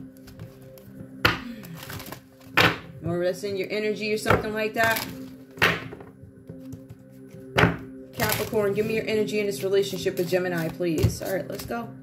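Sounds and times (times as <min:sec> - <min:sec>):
droning background music: 0:00.0 - 0:12.0.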